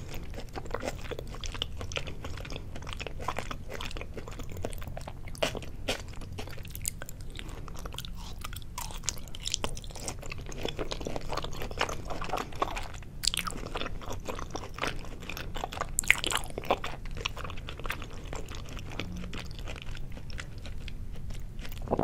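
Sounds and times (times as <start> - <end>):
close chewing with mouth smacks: 0.0 - 22.0.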